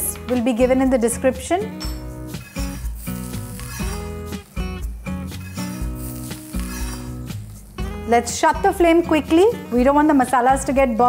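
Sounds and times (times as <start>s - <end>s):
background music: 0.0s - 11.0s
masala sizzling in oil: 2.2s - 9.1s
spatula stirring on pan: 2.3s - 4.6s, 5.4s - 7.5s.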